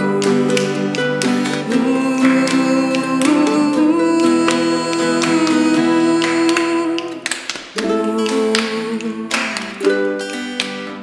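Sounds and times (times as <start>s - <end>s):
sharp hand claps: 0.0s - 11.0s.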